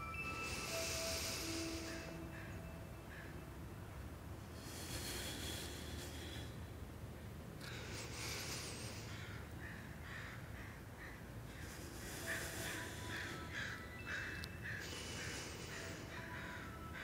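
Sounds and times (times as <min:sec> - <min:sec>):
faint harsh bird calls: 0:00.1 - 0:03.5, 0:07.2 - 0:17.0.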